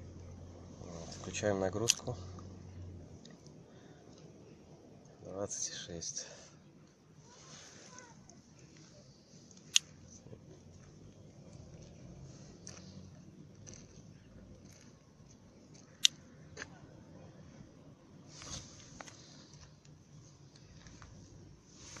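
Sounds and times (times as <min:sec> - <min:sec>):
brief rustle: 0:18.3 - 0:19.9.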